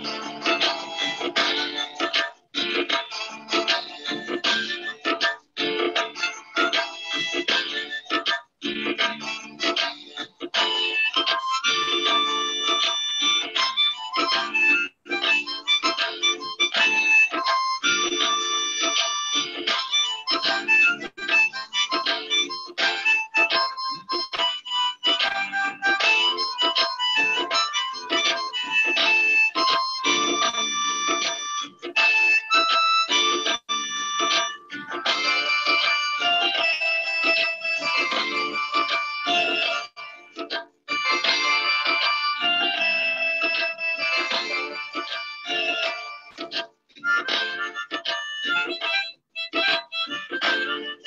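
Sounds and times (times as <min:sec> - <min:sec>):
backing track: 0:00.0 - 0:51.0
harmonica melody: 0:00.0 - 0:51.0.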